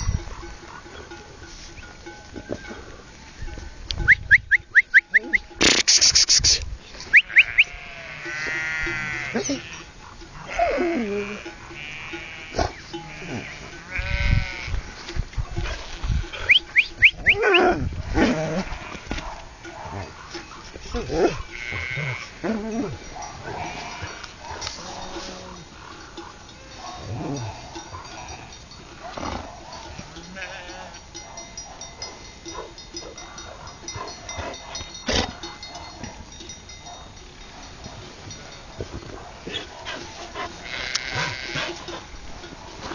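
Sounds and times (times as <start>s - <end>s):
flock of sheep bleating: 7.0s - 15.1s, 21.2s - 25.8s, 26.4s - 28.7s, 29.9s - 31.1s, 40.6s - 42.0s.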